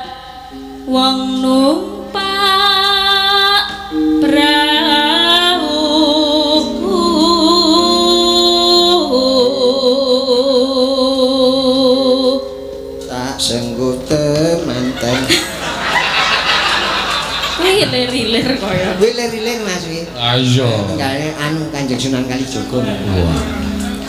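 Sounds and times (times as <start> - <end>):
woman singing long wavering notes: 0.0 - 13.3
sustained accompaniment: 19.8 - 24.0.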